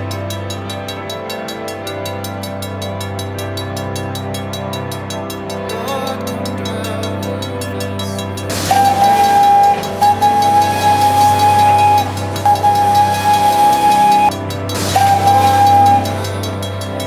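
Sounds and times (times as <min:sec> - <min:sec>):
background music: 0:00.0 - 0:17.0
steam whistle blasts: 0:08.5 - 0:16.7.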